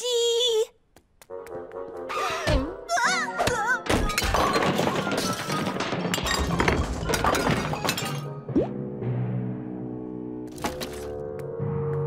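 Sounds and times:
clatter of knocks and crashes: 3.9 - 8.3.

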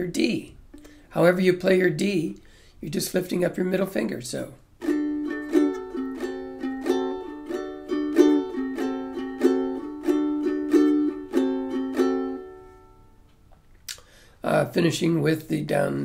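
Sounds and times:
ukulele strumming: 4.8 - 13.2.

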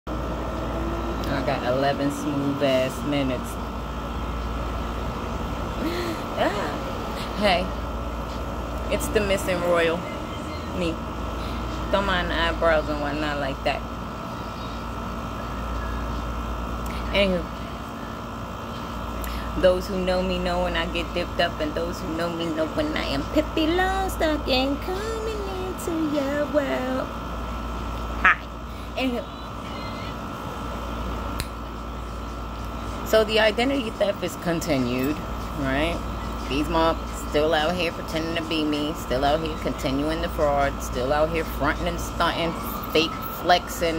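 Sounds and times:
room noise hum and hiss: 0.1 - 43.9.

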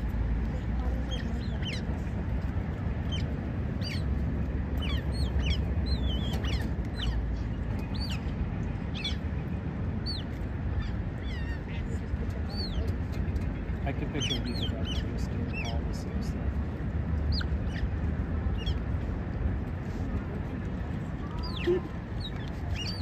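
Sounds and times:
steady low rumble: 0.0 - 23.0
otters chirping: 1.0 - 2.0, 3.0 - 9.3, 10.0 - 11.8, 14.1 - 15.8, 17.2 - 18.8, 21.4 - 23.0.

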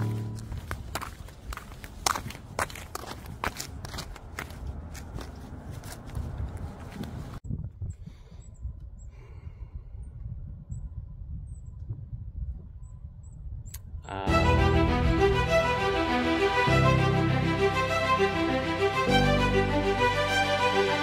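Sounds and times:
intro music: 0.0 - 0.8, 14.3 - 21.0
flip-flop footsteps on concrete: 0.0 - 7.4.

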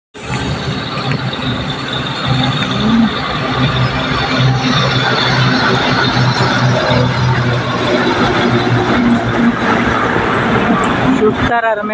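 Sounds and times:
diesel lorries driving past: 0.2 - 11.9
lorry engine humming: 0.2 - 11.9.

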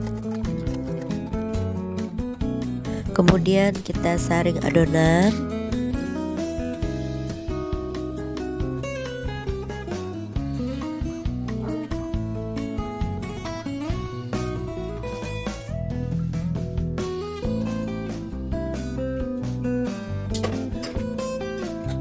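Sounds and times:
plucked and strummed guitar: 0.0 - 22.0.

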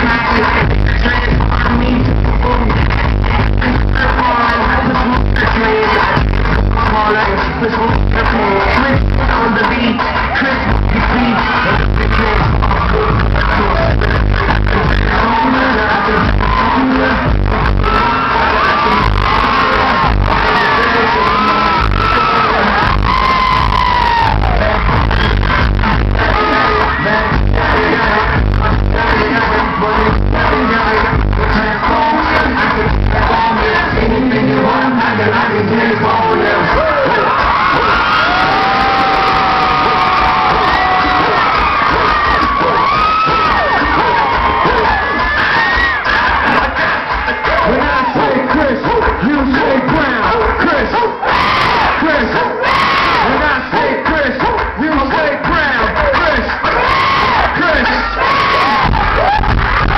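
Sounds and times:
crowd cheering and screaming: 0.0 - 59.9
heavy bass beat: 0.0 - 59.9
person singing: 0.0 - 59.9.

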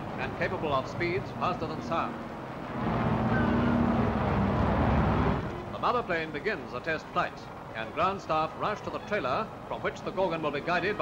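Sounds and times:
propeller aircraft engines droning: 0.0 - 11.0.

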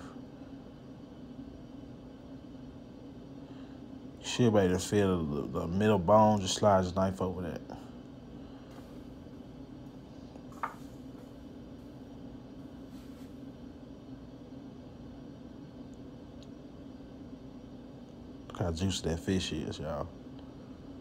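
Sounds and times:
low room hum: 0.0 - 21.0
utensil knocking cutting board: 10.6 - 10.8.

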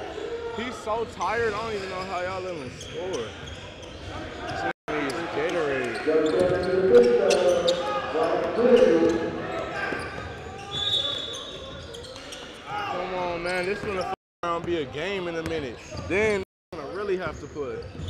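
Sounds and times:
players shouting and talking: 0.0 - 17.8.

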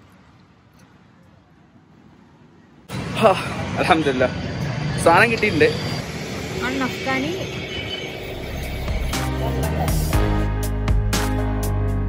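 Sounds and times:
passing traffic: 0.0 - 10.8
music: 8.2 - 12.0.

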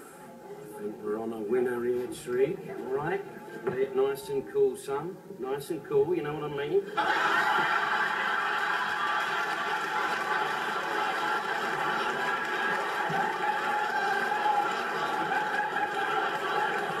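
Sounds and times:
studio audience laughing: 6.9 - 17.0.

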